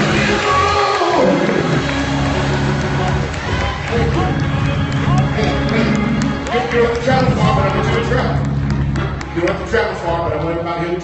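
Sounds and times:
music playing: 0.0 - 11.0
congregation calling out praise: 2.8 - 8.5.

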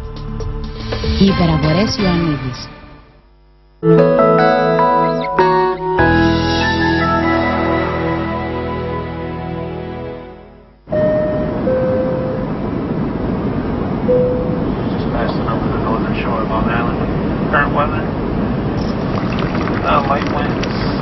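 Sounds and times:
falling two-note chime: 10.9 - 12.6
short tone: 10.9 - 12.6, 14.1 - 14.7
background rumble: 18.6 - 21.0.

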